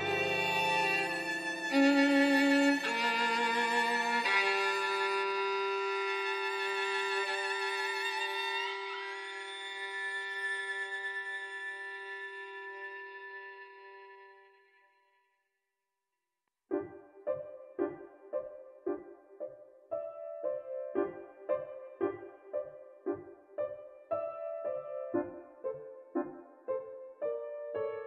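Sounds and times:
bowed strings playing chords: 0.0 - 5.7.

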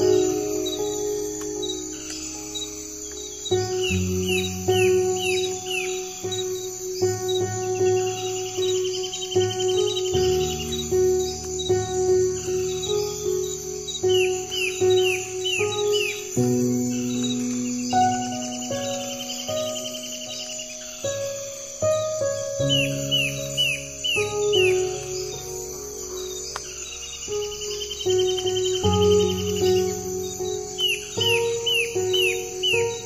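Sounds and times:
bird trill: 0.0 - 33.0
birds chirping: 0.0 - 33.0
insects chirring: 0.0 - 33.0
soft piano and guitar music: 0.0 - 33.0.

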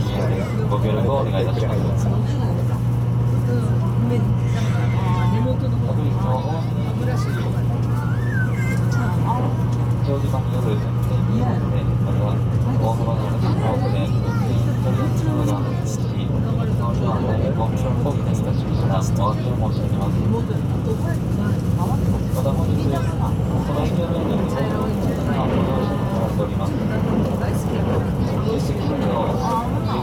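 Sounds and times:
passenger chatter: 0.0 - 30.0
train running rumble: 0.0 - 30.0.

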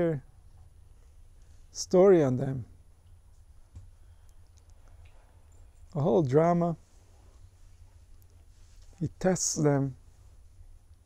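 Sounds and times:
small clicks: 3.8 - 6.0.

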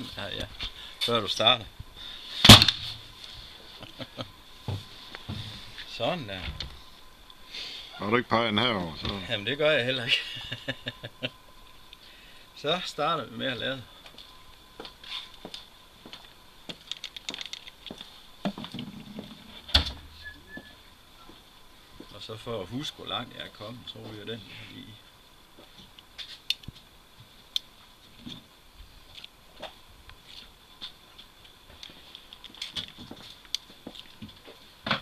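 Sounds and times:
faint high-pitched whine: 0.0 - 35.0
small objects clicking and knocking: 16.7 - 18.9.

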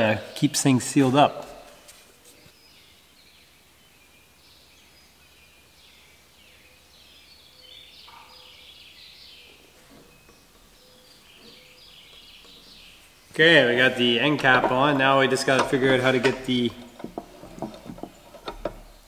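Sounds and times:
birds chirping and trilling: 0.0 - 19.0.

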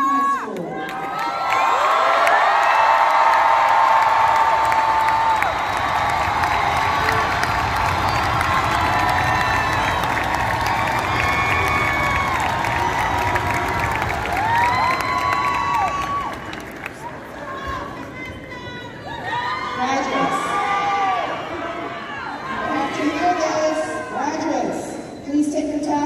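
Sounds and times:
crowd cheering and screaming: 0.0 - 17.9, 18.9 - 24.4
long high screams: 3.7 - 16.5.

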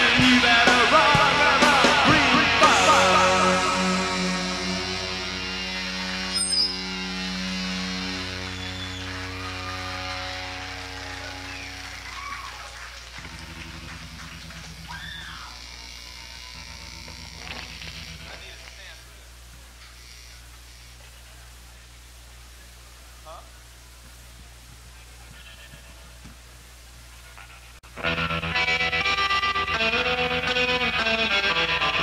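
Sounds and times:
distorted electric guitar chord: 0.0 - 12.2, 13.1 - 19.3, 27.8 - 32.0
amplifier hum: 1.1 - 32.0
audience calls: 8.0 - 18.2.

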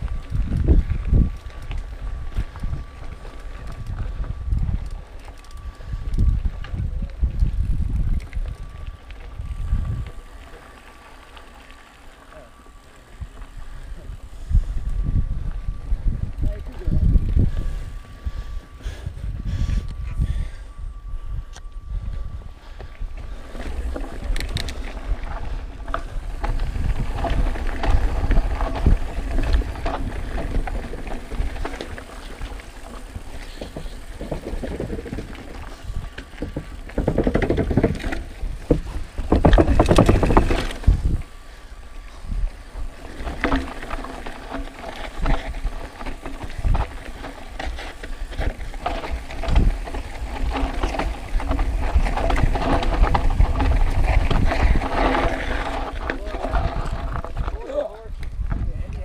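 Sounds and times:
wind on microphone: 0.0 - 10.5, 13.1 - 59.0
tyres crunching over gravel: 0.0 - 15.8, 22.5 - 58.7
bike rattling over bumps: 0.0 - 20.8, 21.9 - 58.8.

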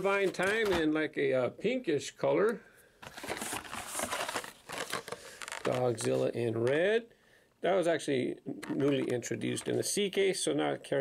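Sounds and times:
plastic blisters and card rustling: 3.0 - 6.8, 8.6 - 9.9.

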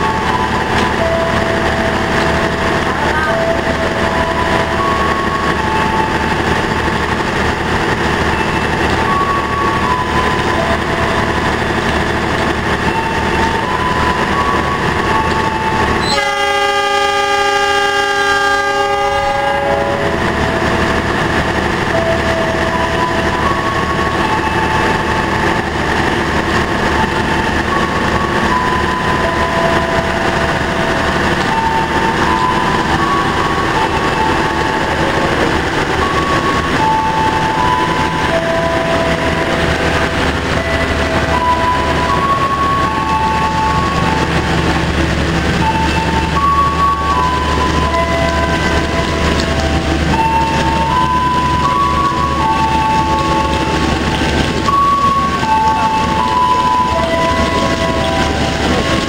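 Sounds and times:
locomotive horn chord: 0.0 - 59.0
train carriages rumbling past: 0.0 - 59.0.

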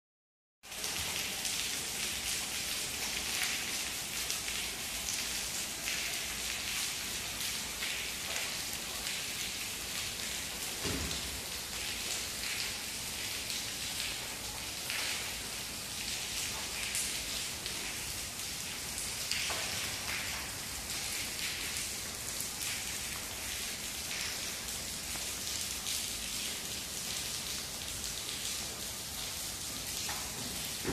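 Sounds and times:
steady rain falling: 0.6 - 30.9.

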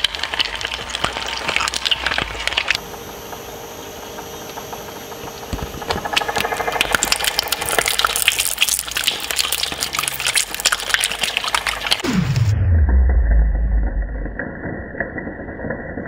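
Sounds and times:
metal shredder humming: 0.0 - 14.3.

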